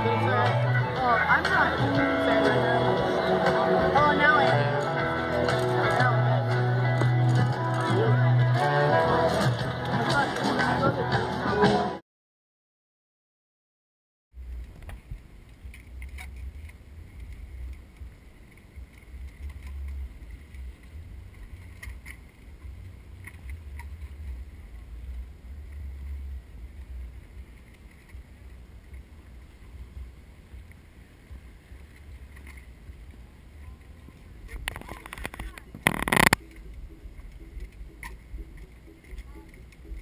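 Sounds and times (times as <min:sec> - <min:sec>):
wind rumbling on microphone: 0:14.4 - 0:40.0.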